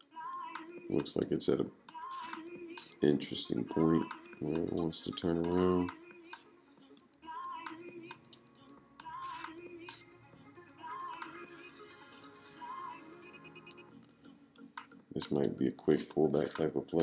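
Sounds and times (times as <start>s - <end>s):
quiet wavering background music: 0.0s - 17.0s
mouse and keyboard clicks: 14.1s - 16.8s.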